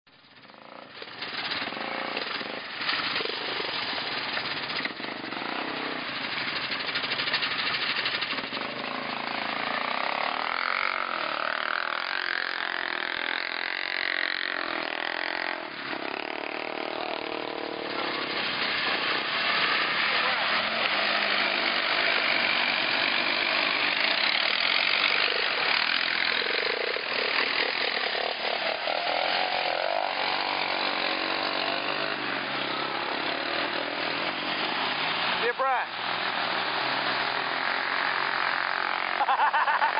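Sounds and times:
atv engines revving: 0.2s - 39.9s
voices: 19.9s - 21.2s.

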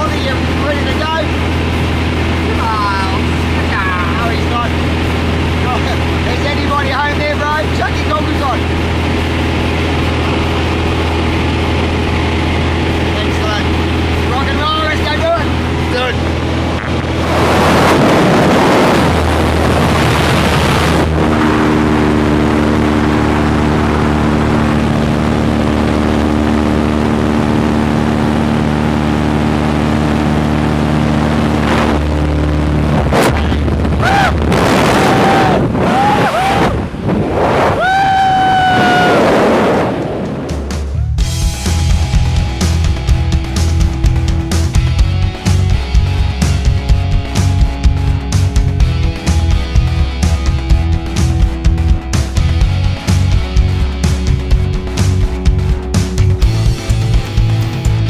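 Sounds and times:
plane engine droning: 0.0s - 58.0s
rushing wind: 0.0s - 58.0s
people whooping: 34.0s - 36.8s, 37.6s - 39.4s.

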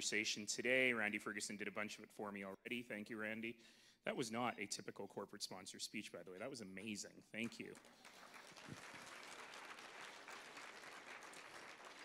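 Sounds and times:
audience applauding: 7.5s - 12.0s.

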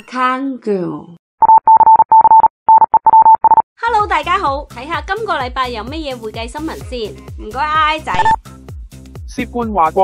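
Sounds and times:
electronic morse-like beeps: 1.4s - 3.6s, 8.1s - 8.4s.

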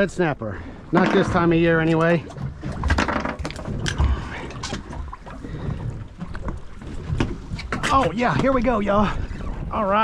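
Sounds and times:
water around boat: 0.0s - 10.0s.

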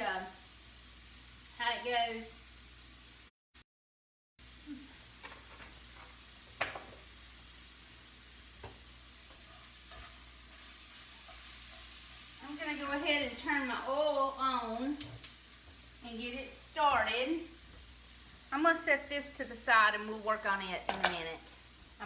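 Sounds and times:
meat cooking in a skillet: 0.0s - 3.3s, 4.4s - 22.0s.

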